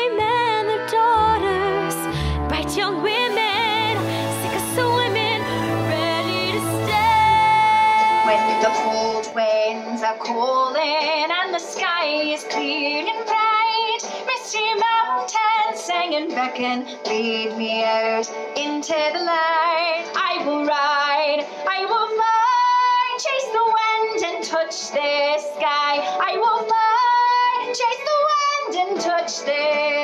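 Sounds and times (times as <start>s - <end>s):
instrumental accompaniment: 0.0s - 17.4s
woman singing with vibrato: 0.0s - 30.0s.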